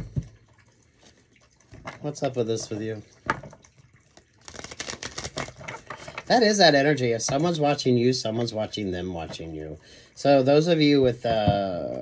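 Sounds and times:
man talking: 0:02.0 - 0:03.1, 0:06.3 - 0:12.0.

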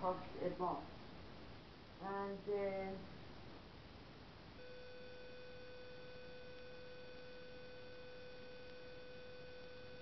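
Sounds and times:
faint steady electronic tone: 0:00.0 - 0:10.0
low hiss: 0:00.0 - 0:10.0.

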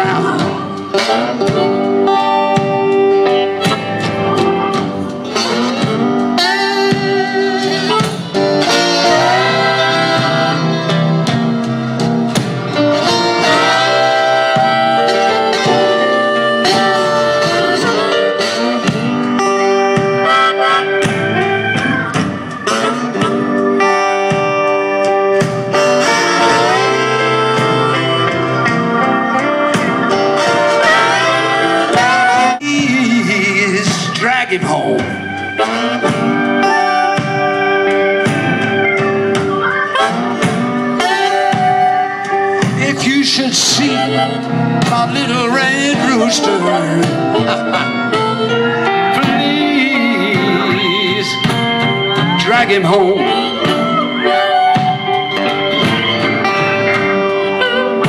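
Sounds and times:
acoustic guitar accompaniment: 0:00.0 - 0:58.0
harmonica solo: 0:00.0 - 0:58.0.

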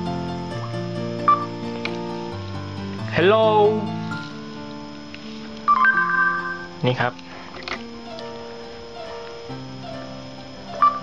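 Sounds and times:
soft background music: 0:00.0 - 0:11.0
electronic two-note chime: 0:05.7 - 0:06.9.

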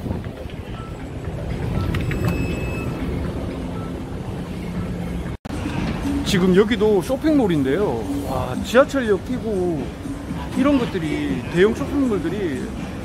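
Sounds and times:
wind on microphone: 0:00.0 - 0:03.5.

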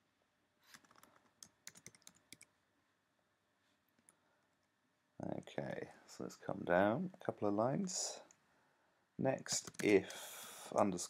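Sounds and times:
keyboard keys typing: 0:00.7 - 0:02.5, 0:09.5 - 0:10.2.

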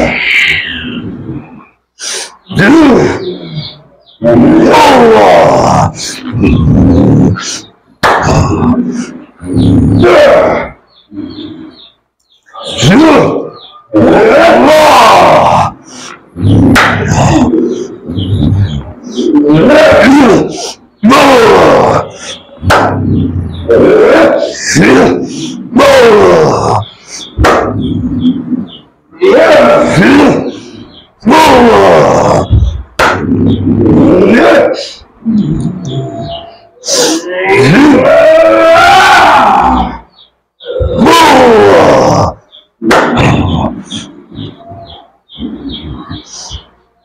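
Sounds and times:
man roaring and screaming: 0:00.0 - 0:01.6, 0:02.5 - 0:07.6, 0:08.2 - 0:11.6, 0:12.7 - 0:27.0, 0:27.6 - 0:32.8, 0:33.4 - 0:42.5.

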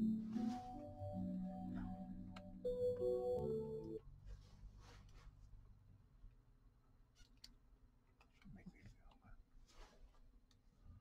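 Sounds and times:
music from a vinyl record: 0:00.0 - 0:04.0.

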